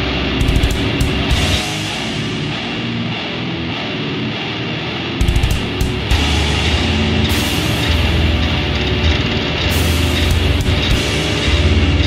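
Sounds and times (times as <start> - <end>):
drums: 0.0 - 12.0
heavy distorted guitars: 0.0 - 12.0.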